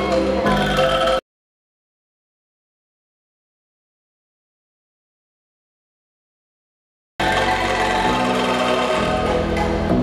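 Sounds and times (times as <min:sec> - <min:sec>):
shaken bamboo ensemble chords: 0:07.2 - 0:10.0.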